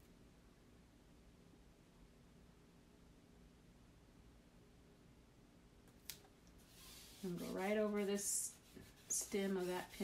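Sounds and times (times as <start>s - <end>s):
hands rubbing stencil on board: 6.6s - 10.0s.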